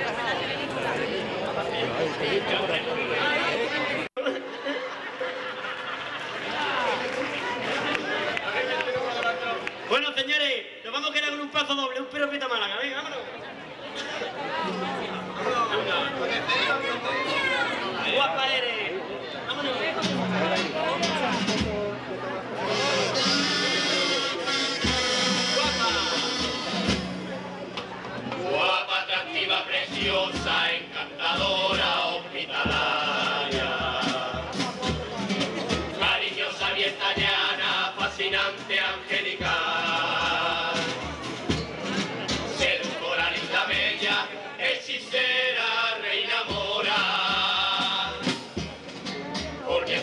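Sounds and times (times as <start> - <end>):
guitar: 13.9 - 18.0, 19.4 - 45.1, 46.4 - 50.0
buzzing kazoo melody: 22.7 - 26.8
group singing unison melody: 28.4 - 34.8, 35.7 - 41.2, 42.5 - 48.6, 49.6 - 50.0
bass drum beats: 32.6 - 44.2.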